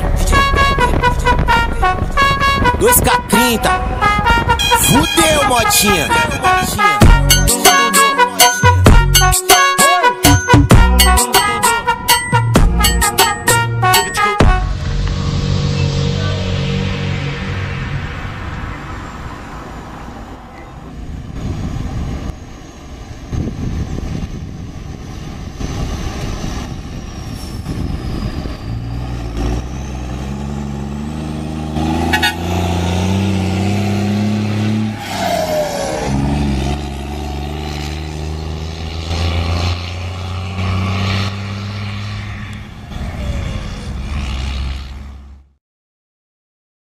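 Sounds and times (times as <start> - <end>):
truck diesel engine revving: 14.5 - 22.3, 25.0 - 45.5.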